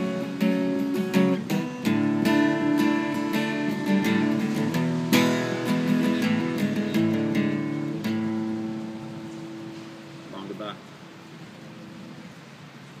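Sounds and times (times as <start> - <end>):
acoustic guitar strums: 0.0 - 11.1
guitar chord ringing: 0.0 - 11.2.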